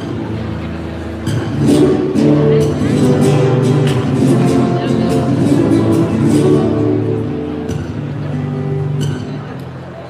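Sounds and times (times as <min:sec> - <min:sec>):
guitar accompaniment: 0:00.0 - 0:10.0.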